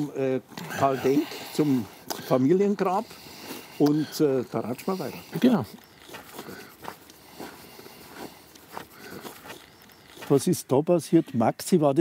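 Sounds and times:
footsteps on gravel: 5.3 - 10.6.

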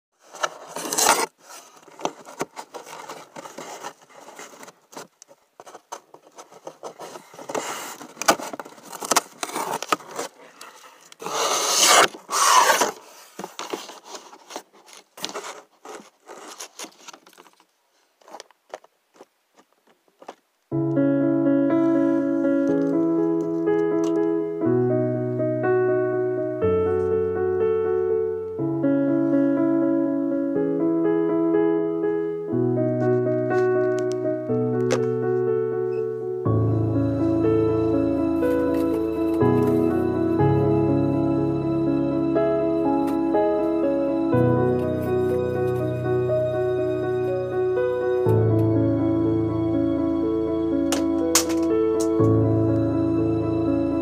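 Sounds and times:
rustling and scraping: 0.2 - 20.5, 22.0 - 24.2, 32.9 - 35.5, 38.4 - 40.4, 44.5 - 47.1, 50.9 - 52.4
piano chords: 20.7 - 54.0.

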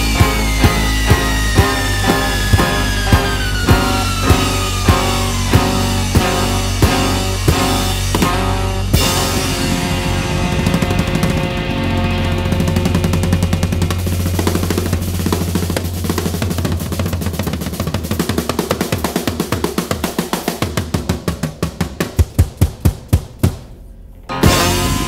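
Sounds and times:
held bass note: 0.0 - 16.2, 24.1 - 25.0
fast drum roll: 0.0 - 23.8, 24.4 - 25.0.

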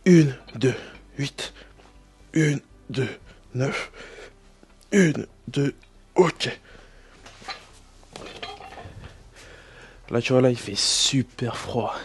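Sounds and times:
metal weight plates clinking: 7.4 - 9.1.

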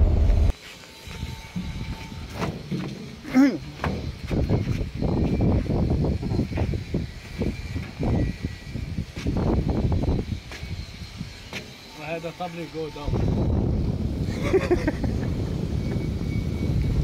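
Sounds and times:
wind rumble on microphone: 0.0 - 0.5, 4.0 - 11.4, 13.0 - 17.0.

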